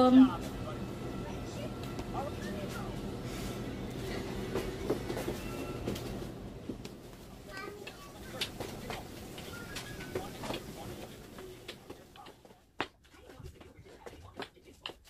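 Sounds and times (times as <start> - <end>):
steady low hum: 0.0 - 15.0
faint voices: 7.1 - 15.0.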